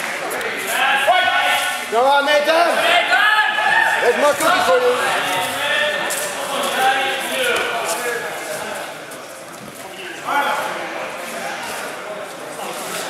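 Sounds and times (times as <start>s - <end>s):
men talking and calling out: 0.2s - 9.0s.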